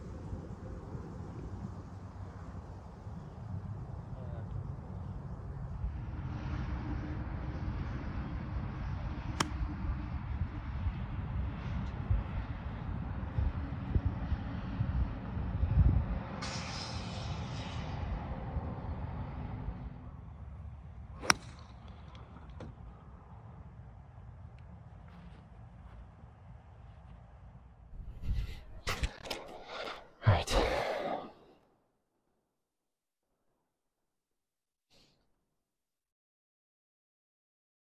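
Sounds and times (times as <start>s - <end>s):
wind rumble on microphone: 0.0s - 30.8s
golf club striking ball: 9.4s - 9.6s, 21.2s - 21.8s.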